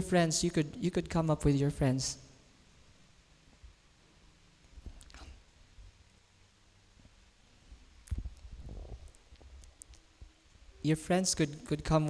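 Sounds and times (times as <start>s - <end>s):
man's voice over pa: 0.0s - 2.2s
short low rumble: 8.0s - 9.2s
faint clicks: 8.0s - 10.3s.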